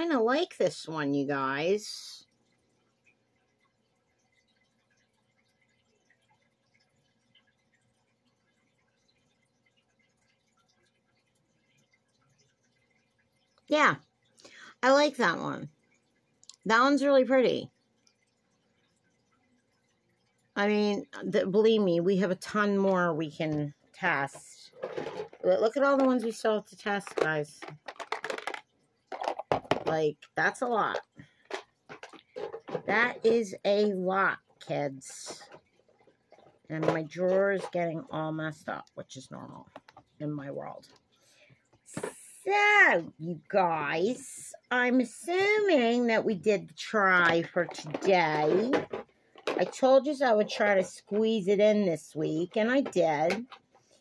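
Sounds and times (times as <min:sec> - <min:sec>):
faint steady hum: 0:00.0 - 0:54.0
plastic tubes clattering in container: 0:21.1 - 0:41.0, 0:41.8 - 0:43.1, 0:45.0 - 0:53.9.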